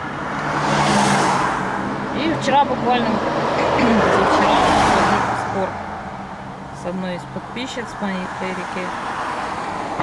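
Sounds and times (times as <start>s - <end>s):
car passing by: 0.1s - 6.2s, 8.3s - 10.0s.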